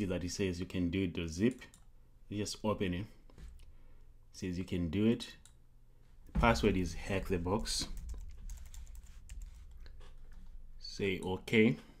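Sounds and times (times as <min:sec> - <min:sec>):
computer keyboard typing: 0:07.3 - 0:10.0.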